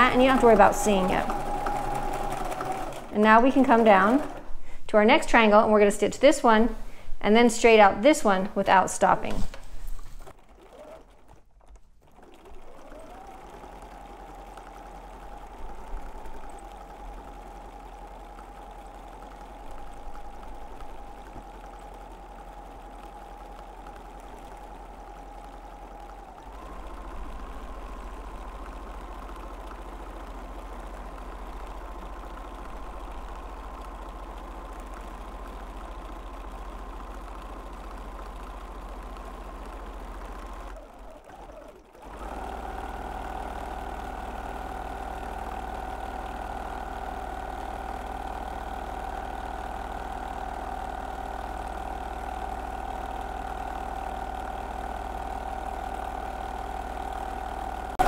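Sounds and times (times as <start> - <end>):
sewing machine running: 0.0 - 5.5, 9.3 - 58.0.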